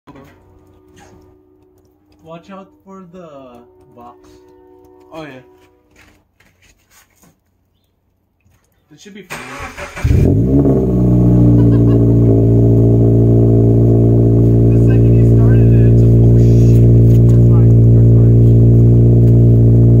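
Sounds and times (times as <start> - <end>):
low steady hum: 0.1 - 6.0, 10.3 - 20.0.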